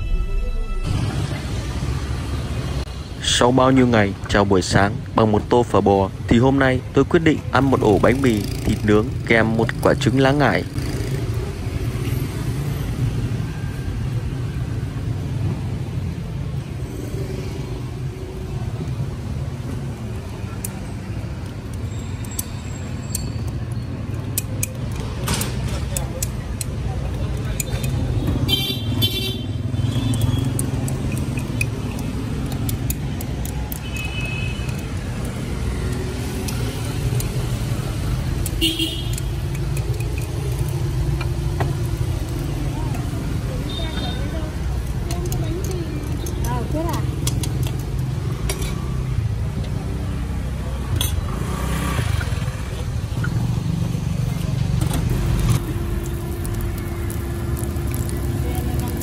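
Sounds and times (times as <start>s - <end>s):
street traffic: 0.0s - 59.0s
motorbike and car engines: 0.8s - 59.0s
vehicle horn beeping: 28.5s - 30.4s, 38.6s - 39.3s.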